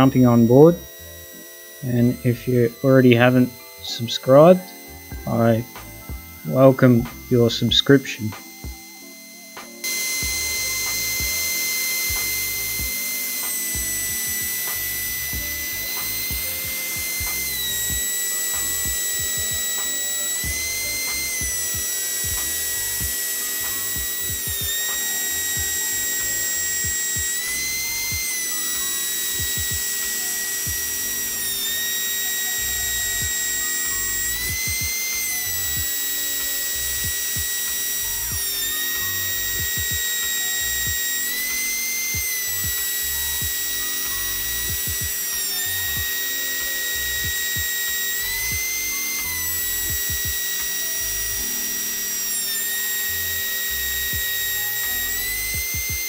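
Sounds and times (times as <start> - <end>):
router spindle high whine: 0.0 - 56.0.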